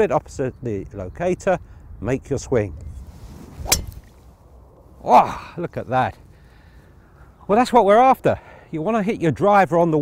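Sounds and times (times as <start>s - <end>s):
golf club striking ball: 3.6s - 4.2s.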